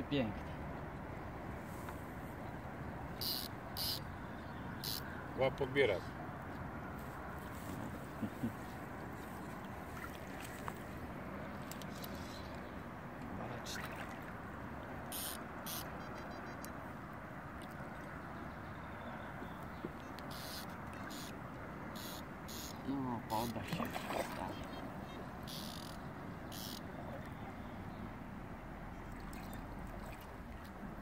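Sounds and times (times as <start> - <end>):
steady background noise: 0.0 - 31.0
fish splashing in water: 9.3 - 11.1, 23.6 - 24.8.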